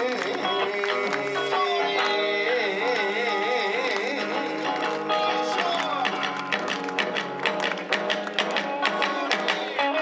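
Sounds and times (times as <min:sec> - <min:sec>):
electric guitar melody: 0:00.0 - 0:10.0.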